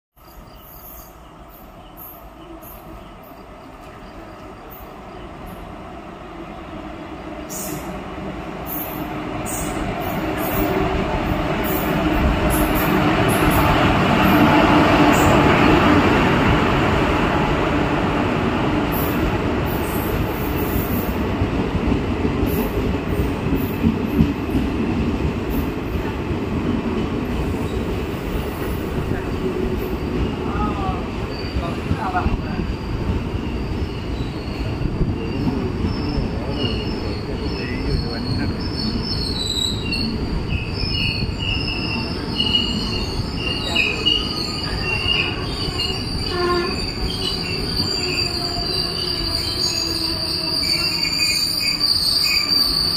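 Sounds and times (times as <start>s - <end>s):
train wheels rumbling on rail: 0.6s - 52.9s
high-pitched metallic squeals: 40.8s - 52.9s.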